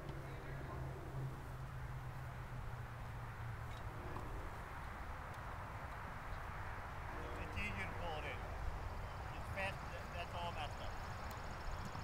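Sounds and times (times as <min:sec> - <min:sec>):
low outdoor background noise: 0:00.0 - 0:12.0.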